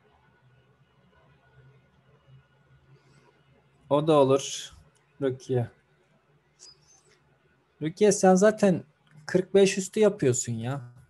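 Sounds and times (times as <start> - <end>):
man talking: 3.9 - 5.7, 7.8 - 11.0
faint high squeak: 6.6 - 7.1.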